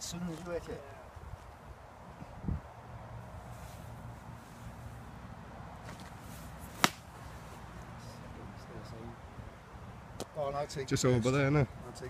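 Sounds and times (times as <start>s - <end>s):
golf club striking ball: 6.8s - 7.1s.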